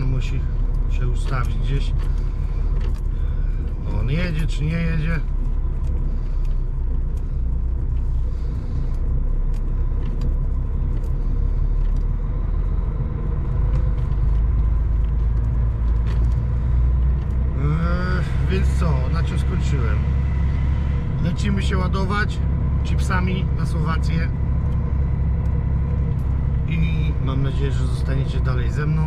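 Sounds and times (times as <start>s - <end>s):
diesel engine rumbling: 0.0s - 29.0s.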